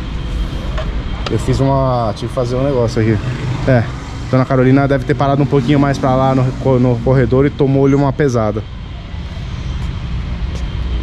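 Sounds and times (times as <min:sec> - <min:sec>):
distant engines rumbling: 0:00.0 - 0:11.0.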